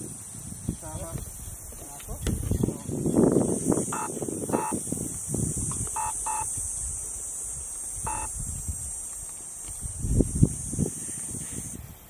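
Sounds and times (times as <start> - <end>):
steady high hiss: 0.0 - 12.0
short electronic beeps: 4.0 - 4.8, 6.0 - 6.5, 8.1 - 8.3.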